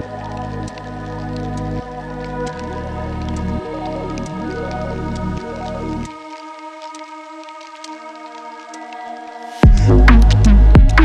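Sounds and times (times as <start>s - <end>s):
instrumental electronic music: 0.0s - 11.0s.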